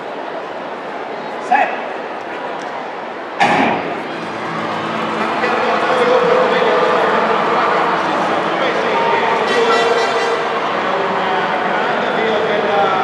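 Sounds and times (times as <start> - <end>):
crowd cheering: 2.1 - 13.0.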